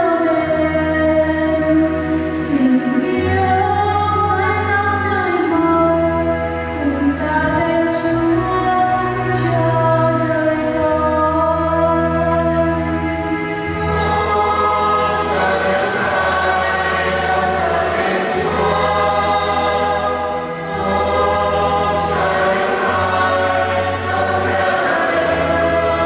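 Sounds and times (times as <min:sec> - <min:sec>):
church choir singing: 0:00.0 - 0:26.0
sustained low accompaniment: 0:00.0 - 0:26.0.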